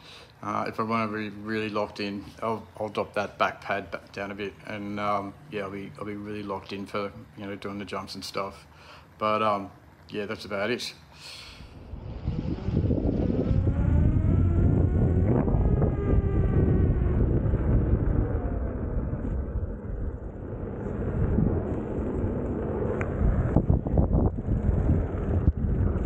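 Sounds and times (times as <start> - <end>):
wind rumble on microphone: 11.6 - 26.0
electric motor whine: 11.7 - 26.0.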